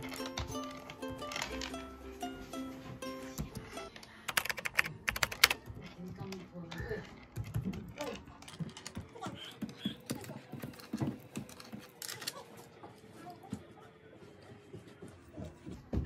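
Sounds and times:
typing on computer keyboard: 4.3s - 5.7s.

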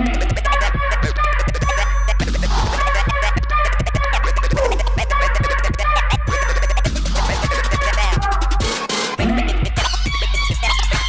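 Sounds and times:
music with low bass drone: 0.0s - 11.0s
turntable scratching: 0.0s - 11.0s.

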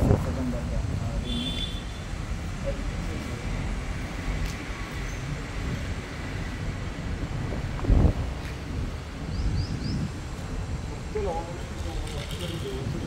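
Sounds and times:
wind on microphone: 0.0s - 1.2s, 2.0s - 13.0s
road traffic on bridge: 0.0s - 13.0s.

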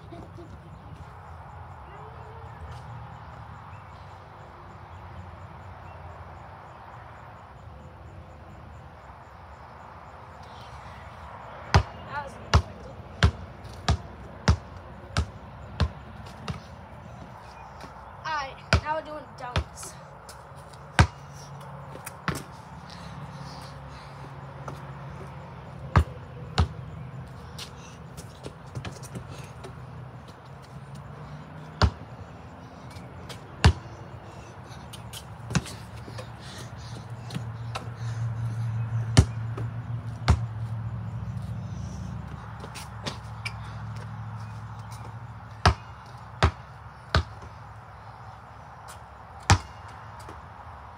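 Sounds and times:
basketball bouncing on concrete: 11.7s - 17.9s, 18.6s - 21.2s, 22.0s - 22.5s, 24.6s - 32.2s, 32.9s - 34.0s, 34.9s - 38.2s, 38.9s - 40.8s, 42.3s - 44.2s, 44.8s - 47.6s, 49.4s - 50.4s.

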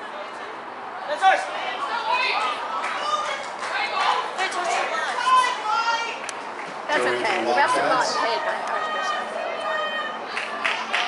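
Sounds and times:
indistinct chatter and calls: 1.5s - 11.0s.

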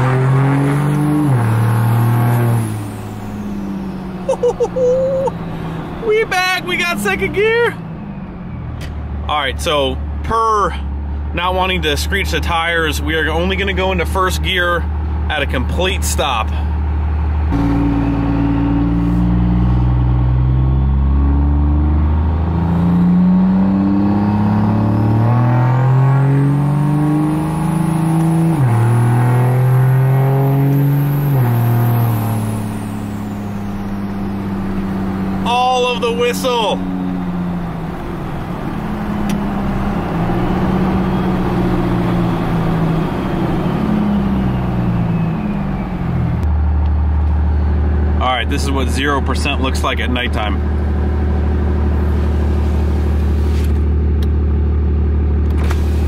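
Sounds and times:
diesel engine accelerating: 0.0s - 56.0s
turbo whistle: 17.5s - 21.0s.

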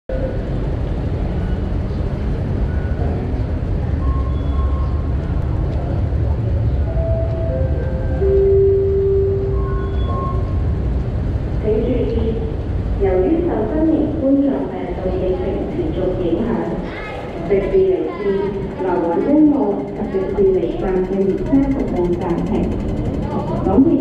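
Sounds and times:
hubbub of distant voices: 0.1s - 10.9s, 11.6s - 24.0s
steady low rumble: 10.6s - 24.0s.

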